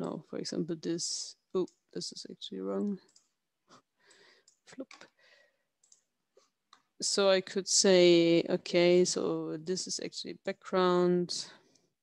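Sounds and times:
computer mouse clicks: 2.8s - 3.4s, 4.1s - 5.2s, 5.8s - 6.9s.

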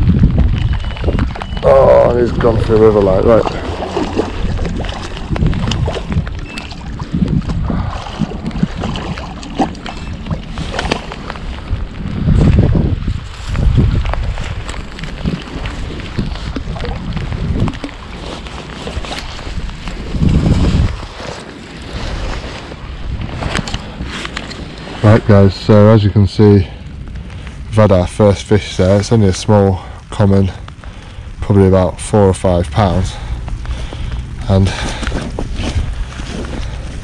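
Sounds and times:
rain: 0.0s - 37.0s
wind buffeting microphone: 0.0s - 37.0s
fish splashing in water: 2.3s - 11.8s.

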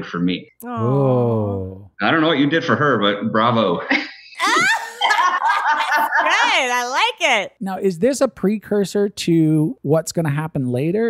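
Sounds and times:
long drawn-out laugh: 4.0s - 6.4s
people laughing: 4.4s - 6.9s.

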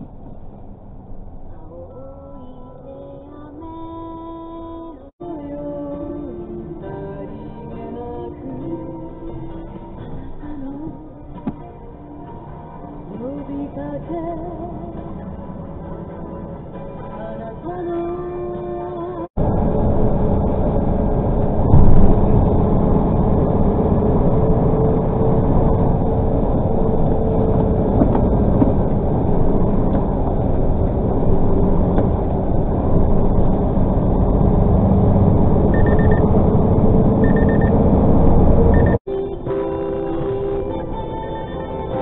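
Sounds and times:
truck engine and road rumble: 0.0s - 42.0s
short high beeps: 35.7s - 36.4s, 37.2s - 37.8s, 38.7s - 39.0s.

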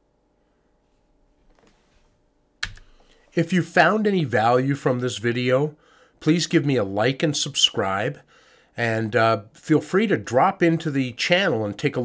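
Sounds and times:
computer keyboard and mouse clicks: 2.6s - 3.0s.

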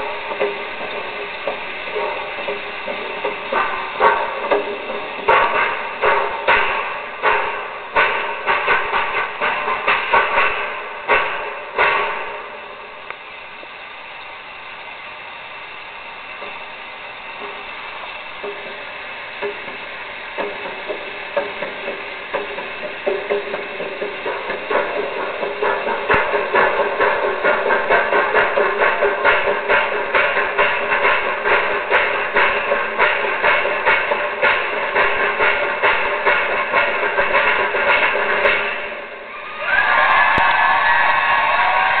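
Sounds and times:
water percussion rhythm: 0.0s - 42.0s
crowd cheering and whooping: 39.3s - 42.0s.

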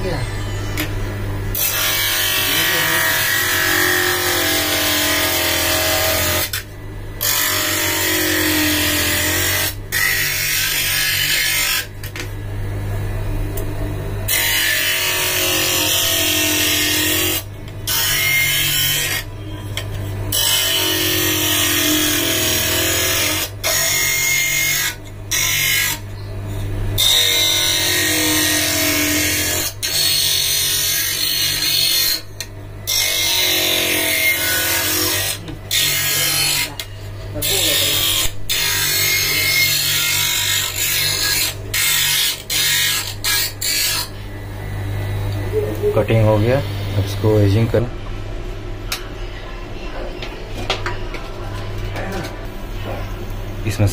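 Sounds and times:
high cutting noise: 0.0s - 12.0s, 20.3s - 26.0s, 27.0s - 47.6s.

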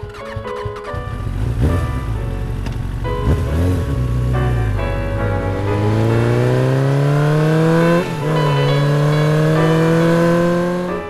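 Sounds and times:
background music: 0.0s - 11.0s
vehicle engine revving: 0.0s - 11.0s.

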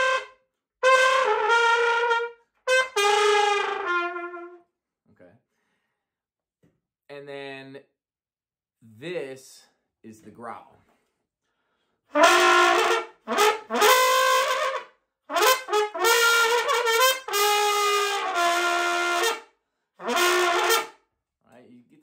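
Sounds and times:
trumpet with throat growl: 0.0s - 4.6s, 12.1s - 19.4s, 20.0s - 20.9s.

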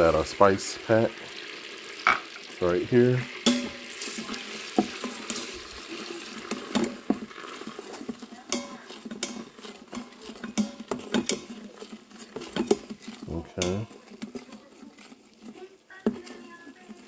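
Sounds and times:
light sizzle: 0.0s - 17.0s
spatula scraping metal pot: 1.6s - 17.0s.

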